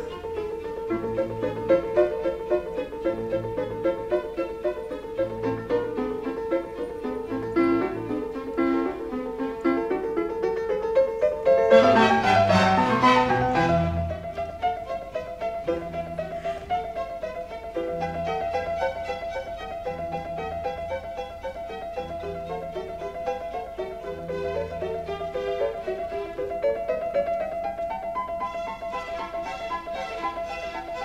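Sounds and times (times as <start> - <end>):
piano and string orchestra: 0.0 - 31.0.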